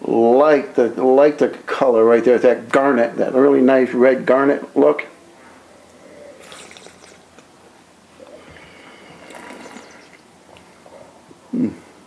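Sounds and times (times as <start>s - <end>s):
wine slurping: 5.7s - 10.8s.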